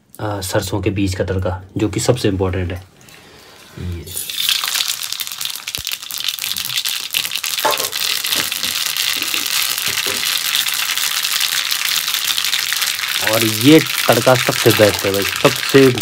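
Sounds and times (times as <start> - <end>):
mustard seeds sizzling in hot oil: 4.2 - 16.0.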